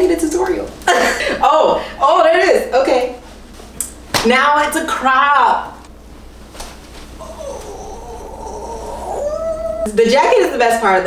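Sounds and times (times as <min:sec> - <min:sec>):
high-pitched wordless vocal squeal: 0:07.2 - 0:10.1.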